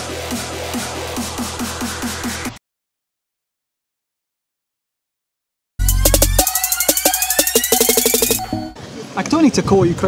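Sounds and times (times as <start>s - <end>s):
drum hits: 5.8s - 8.7s
electronic dance music: 5.8s - 8.8s
faint outdoor background noise: 8.8s - 10.0s.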